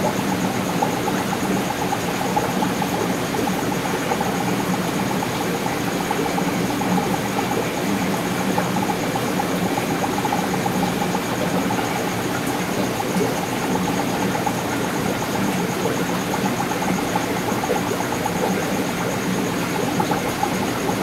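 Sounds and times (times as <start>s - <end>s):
aquarium air bubbler bubbling: 0.0s - 21.0s.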